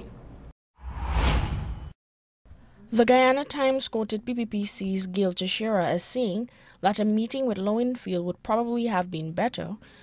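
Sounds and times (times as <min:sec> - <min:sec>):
whoosh sound effect: 0:00.8 - 0:02.0.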